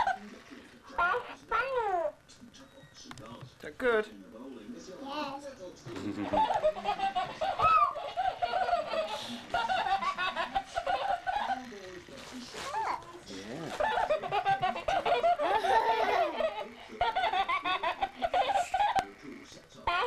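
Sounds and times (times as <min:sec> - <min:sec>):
young child chattering and laughing: 0:06.2 - 0:11.6, 0:12.6 - 0:13.2, 0:13.8 - 0:19.0.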